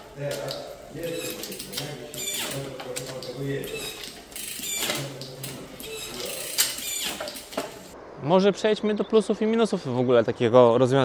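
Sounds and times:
bicycle chain clicking onto sprockets: 0:00.0 - 0:08.0
electronic derailleur whirring: 0:00.6 - 0:08.0.

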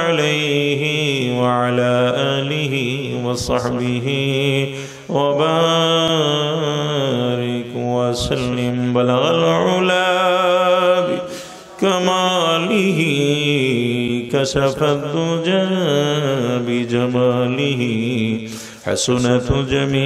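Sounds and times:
man chanting into microphone: 0:00.0 - 0:20.0.

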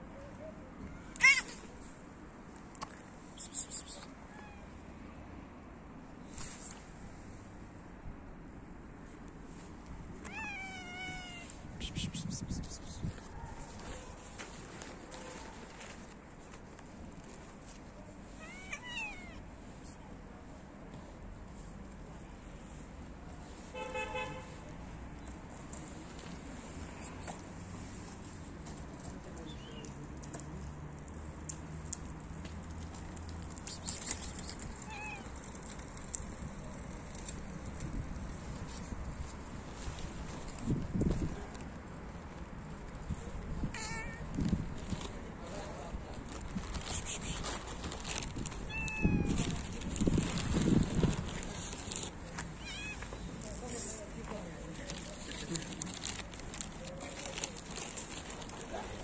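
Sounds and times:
cat meowing: 0:00.8 - 0:01.7, 0:10.2 - 0:11.6, 0:18.3 - 0:19.4, 0:34.8 - 0:35.3, 0:43.7 - 0:44.3, 0:48.6 - 0:49.4, 0:52.6 - 0:53.2.

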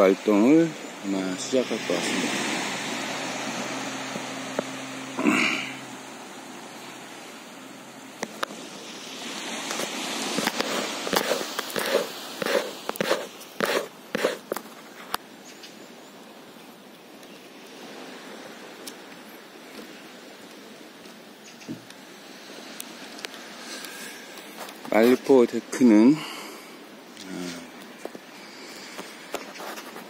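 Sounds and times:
steady background hiss: 0:00.0 - 0:30.0
footsteps on wooden boards: 0:10.4 - 0:14.8.

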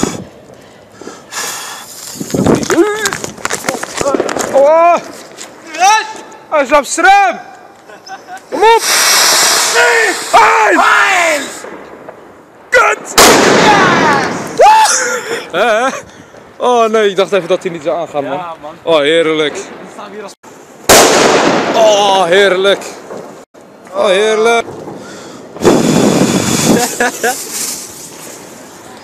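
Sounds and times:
firecracker fuse hissing: 0:00.0 - 0:06.3, 0:07.8 - 0:12.0, 0:24.8 - 0:29.0
firework burst with whistling: 0:08.1 - 0:10.4
person shouting: 0:09.7 - 0:11.6, 0:12.8 - 0:15.4.

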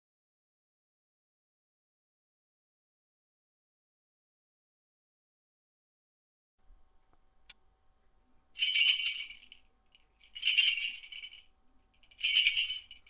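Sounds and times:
small metal bells jingling: 0:08.6 - 0:13.0.

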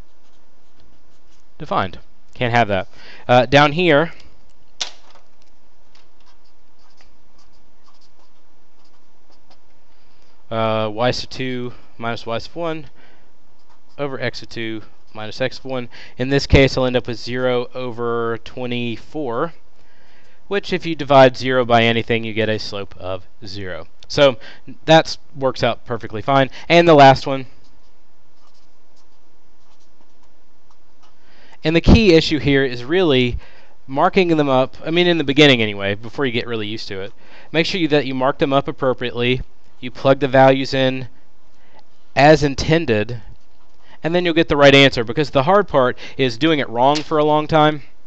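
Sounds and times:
marker pen writing on paper: 0:00.0 - 0:01.6, 0:06.0 - 0:10.4, 0:13.5 - 0:14.4, 0:27.5 - 0:31.2
steady low hum: 0:00.0 - 0:48.0.

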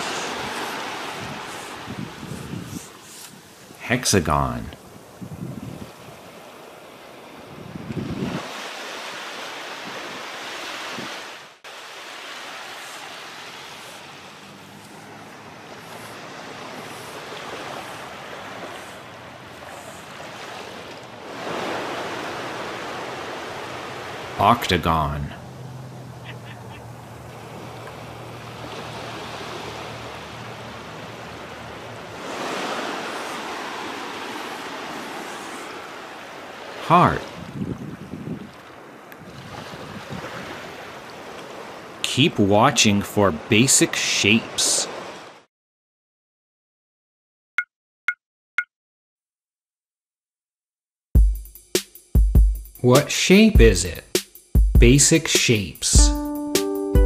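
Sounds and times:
wind buffeting microphone: 0:00.0 - 0:03.8, 0:04.8 - 0:06.4, 0:07.4 - 0:08.5, 0:37.3 - 0:38.6, 0:39.2 - 0:40.6
surf washing over sand: 0:00.0 - 0:25.3, 0:27.0 - 0:45.4.

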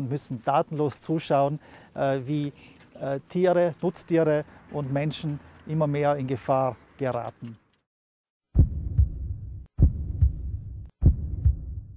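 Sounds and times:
heartbeat thumps: 0:08.6 - 0:11.9.

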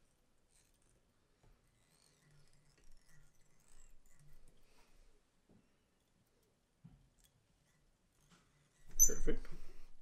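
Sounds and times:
thread scratching and squeaking: 0:00.0 - 0:04.8, 0:07.7 - 0:09.4.

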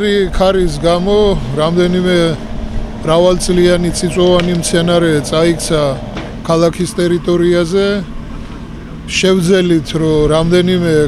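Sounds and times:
man speaking: 0:00.0 - 0:02.4, 0:03.0 - 0:08.1, 0:09.1 - 0:11.0
street traffic noise: 0:00.0 - 0:11.0.

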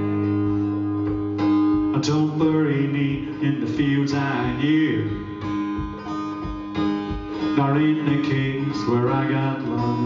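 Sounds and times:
acoustic guitar strumming: 0:00.0 - 0:10.0
person singing: 0:01.9 - 0:10.0.

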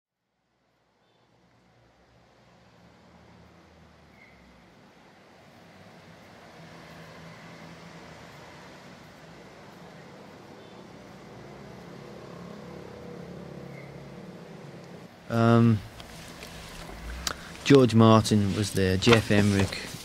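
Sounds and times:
cars passing: 0:01.3 - 0:20.0
low engine hum: 0:11.1 - 0:20.0.

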